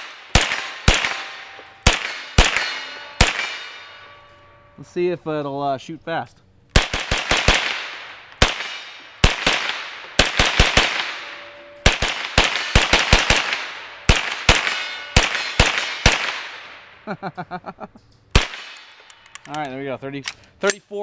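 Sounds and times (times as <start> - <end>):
rapid gunshots with echo: 0.0 - 3.8, 6.8 - 16.7
man laughing: 17.0 - 18.0.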